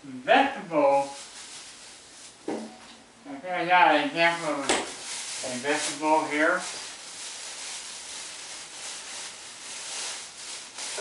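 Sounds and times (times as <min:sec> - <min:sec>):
plastic bag rustling: 0:00.8 - 0:02.8, 0:04.2 - 0:11.0.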